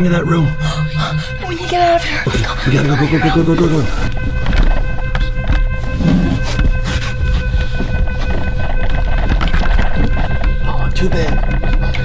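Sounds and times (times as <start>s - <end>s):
background music with held tones: 0.0s - 12.0s
people crawling on carpet: 3.9s - 10.1s.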